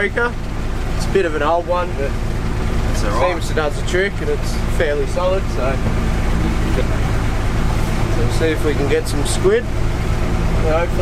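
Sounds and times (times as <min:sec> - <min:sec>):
boat motor humming: 0:00.0 - 0:11.0
noisy water wash: 0:00.0 - 0:11.0.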